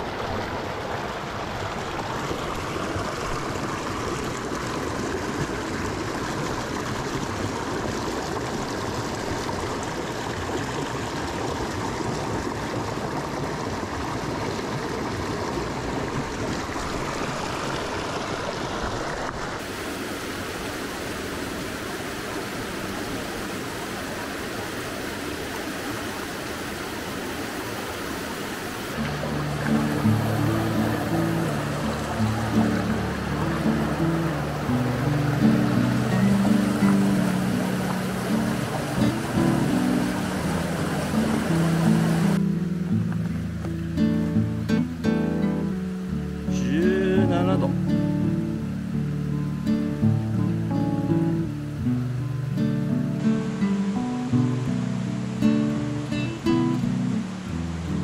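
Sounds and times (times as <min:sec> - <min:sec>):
flowing stream water: 0:00.0 - 0:58.0
background music: 0:29.0 - 0:53.2.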